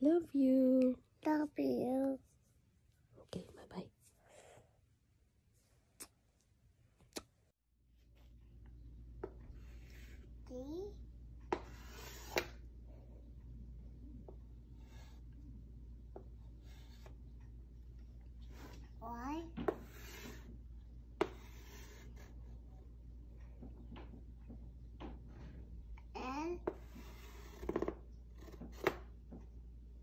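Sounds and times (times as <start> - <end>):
chalk scratching on chalkboard: 9.5 - 10.3, 11.5 - 12.6, 14.7 - 15.4, 16.5 - 17.2, 19.6 - 20.6, 21.2 - 22.6, 26.6 - 29.0.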